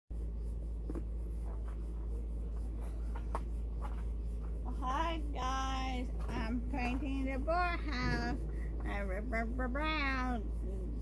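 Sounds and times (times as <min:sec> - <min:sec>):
low background rumble: 0:00.1 - 0:11.0.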